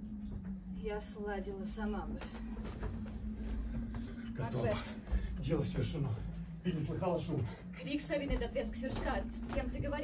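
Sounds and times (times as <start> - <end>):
low hum with rumble: 0.0 - 10.0
footsteps on wooden boards: 8.1 - 10.0.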